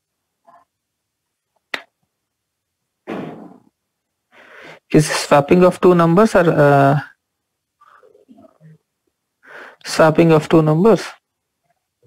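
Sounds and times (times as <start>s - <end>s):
person breathing: 4.3s - 4.9s, 9.4s - 9.9s
person speaking: 4.4s - 7.2s, 9.5s - 11.2s.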